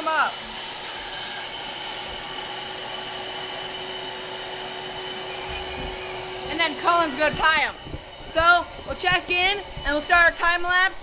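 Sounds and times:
electric balloon inflator humming: 0.0 - 11.0.

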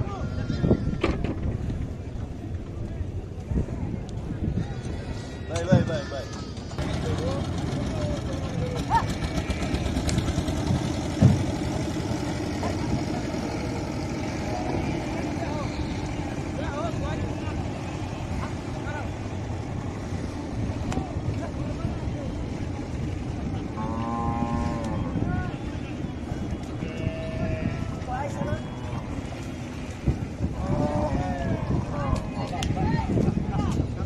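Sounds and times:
low engine drone: 6.5 - 32.3.

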